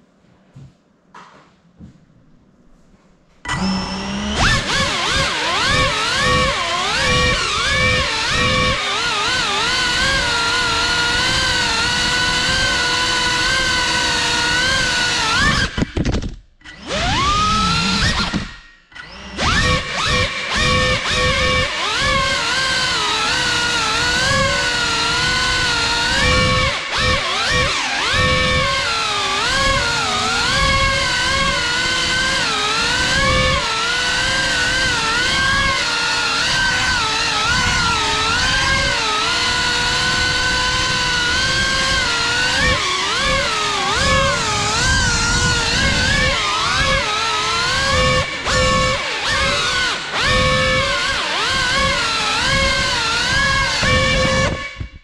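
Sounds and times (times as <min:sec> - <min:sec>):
drone propeller whine: 0:23.2 - 0:54.9.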